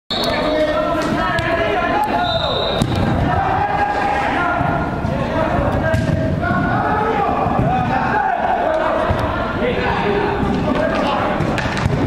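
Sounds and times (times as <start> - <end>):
players shouting in a hall: 0.2 - 11.4.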